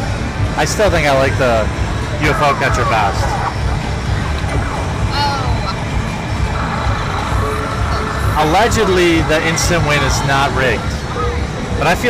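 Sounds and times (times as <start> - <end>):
low rumble of machines and crowd: 0.0 - 12.0
electronic game sounds gliding: 0.6 - 12.0.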